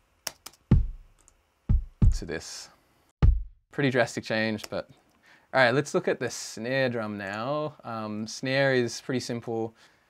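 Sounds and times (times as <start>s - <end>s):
sharp clicks: 0.2s - 1.4s
deep kick drum hits: 0.7s - 1.1s, 1.7s - 2.3s, 3.2s - 3.6s.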